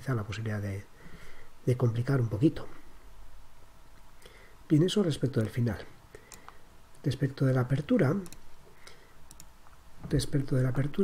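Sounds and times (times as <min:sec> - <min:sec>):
computer mouse clicks: 0:06.2 - 0:06.6, 0:08.2 - 0:08.5, 0:09.3 - 0:09.8.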